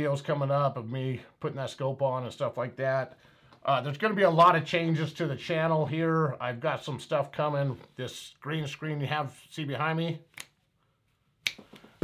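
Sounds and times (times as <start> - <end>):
man speaking: 0.0 - 10.3.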